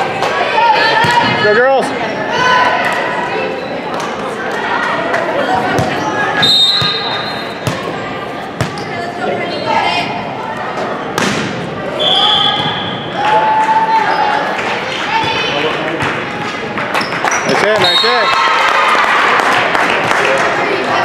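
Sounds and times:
volleyball hits: 5.6s - 6.1s, 6.7s - 8.0s, 11.1s - 11.7s.

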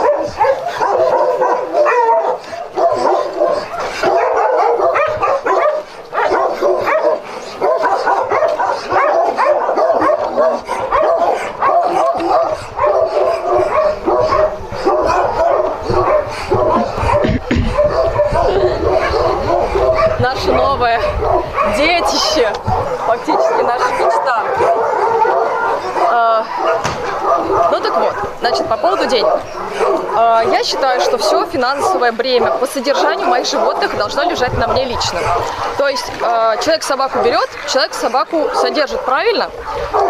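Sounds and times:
dogs barking and yelping: 0.0s - 40.0s.

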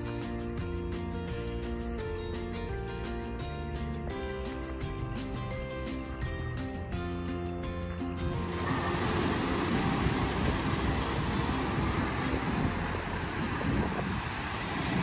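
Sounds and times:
music: 0.0s - 14.2s
steady rushing noise: 8.2s - 15.0s.

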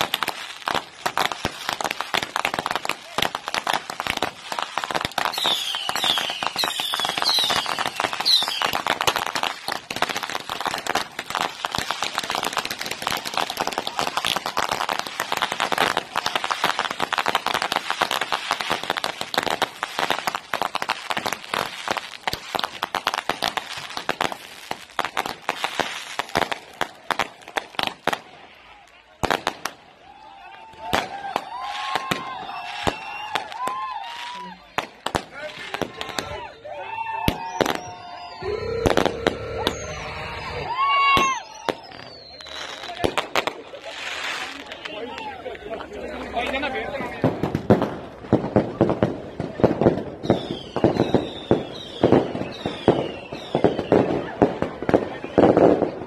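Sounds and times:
fireworks whistling: 0.0s - 28.4s, 30.7s - 45.3s, 46.9s - 56.0s
fireworks crackling and popping: 0.0s - 56.0s.

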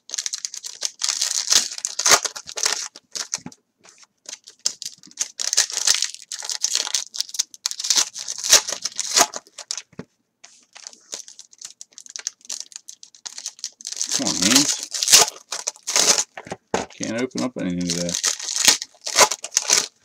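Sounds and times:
card pack wrapper crinkling: 0.0s - 9.9s, 10.5s - 20.0s.

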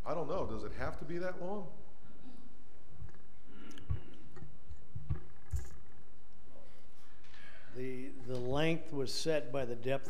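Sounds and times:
soft microphone thumps: 3.8s - 5.8s.

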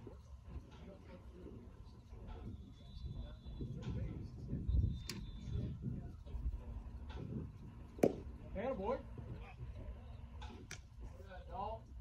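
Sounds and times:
baseball smacking into mitt: 8.0s - 8.2s.

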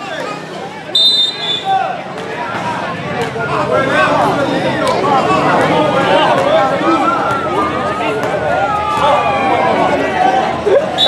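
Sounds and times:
crowd chatter: 0.0s - 11.0s
referee's whistle blast: 0.9s - 1.7s.

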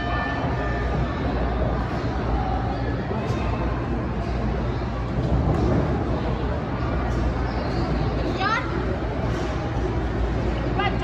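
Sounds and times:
crowd murmur in hall: 0.0s - 11.0s.

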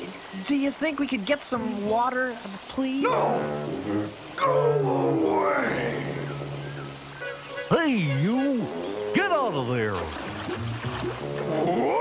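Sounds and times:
low growling creature voice: 3.0s - 6.6s
background music: 10.2s - 12.0s.

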